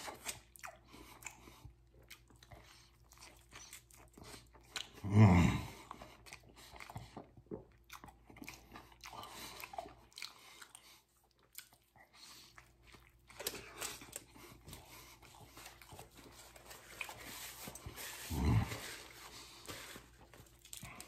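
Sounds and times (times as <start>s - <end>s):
person chewing food: 0.0s - 21.0s.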